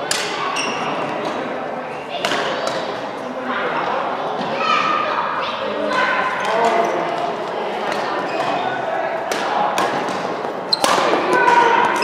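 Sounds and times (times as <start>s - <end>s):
people talking: 0.0s - 12.0s
racket hitting shuttlecock: 9.2s - 12.0s.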